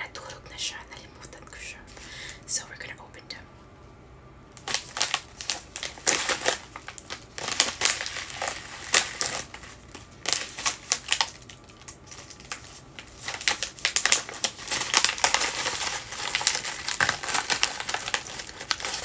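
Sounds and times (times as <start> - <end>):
plastic bag crinkling: 4.6 - 19.0.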